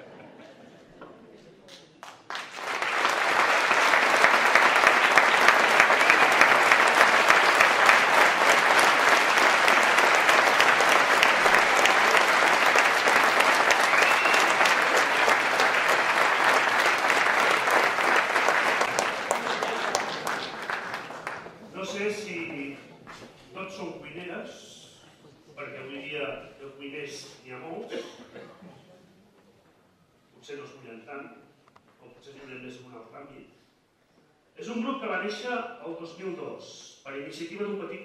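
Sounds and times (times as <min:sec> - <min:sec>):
audience applauding: 0:02.0 - 0:22.0.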